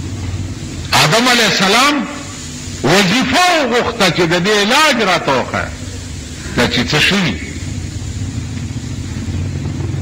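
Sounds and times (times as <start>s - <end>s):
even hiss: 0.0s - 10.0s
steady low rumble: 2.2s - 10.0s.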